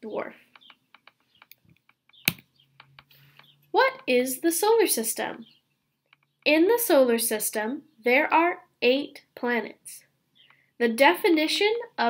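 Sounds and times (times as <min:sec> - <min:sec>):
computer clicks and taps: 0:00.5 - 0:03.6, 0:06.1 - 0:06.5
sharp mouse click: 0:00.6 - 0:03.5.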